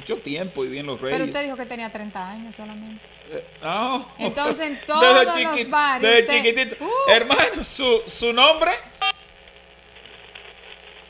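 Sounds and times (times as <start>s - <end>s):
telephone line hiss: 0.0s - 11.0s.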